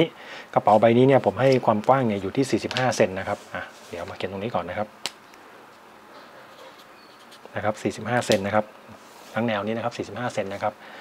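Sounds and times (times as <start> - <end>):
marker pen scratching on paper: 6.4 - 7.5.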